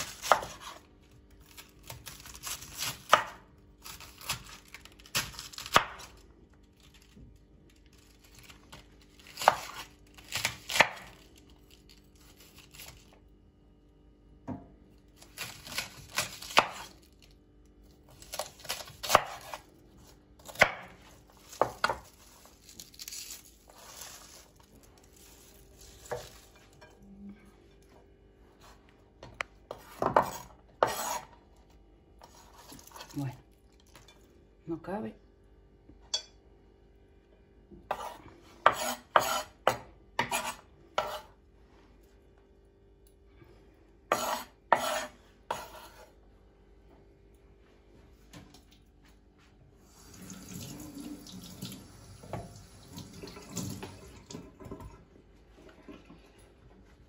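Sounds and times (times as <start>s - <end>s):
knife slicing cabbage on board: 0.0s - 6.2s, 8.7s - 11.2s, 15.2s - 17.0s, 18.1s - 24.4s, 25.3s - 26.6s, 29.7s - 31.4s, 32.2s - 33.3s, 37.8s - 41.4s, 44.1s - 46.2s.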